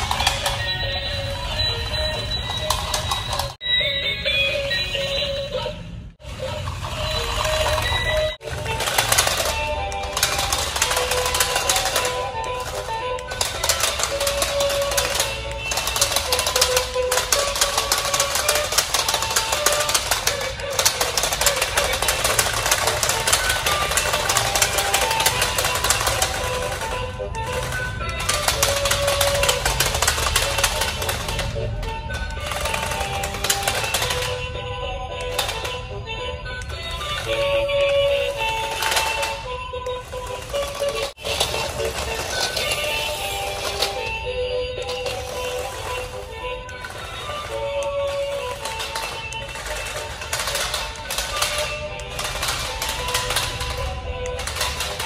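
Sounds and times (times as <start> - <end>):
toy motors and wheels rattling: 0.0 - 55.0.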